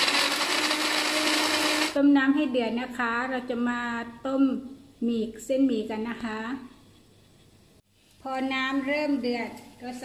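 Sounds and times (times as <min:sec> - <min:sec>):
blender whirring: 0:00.0 - 0:02.0.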